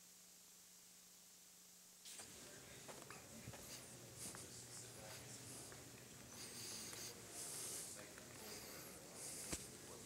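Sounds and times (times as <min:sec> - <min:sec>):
faint low hum: 0:00.0 - 0:10.0
soft rustling: 0:02.0 - 0:10.0
hushed whispering: 0:02.4 - 0:10.0.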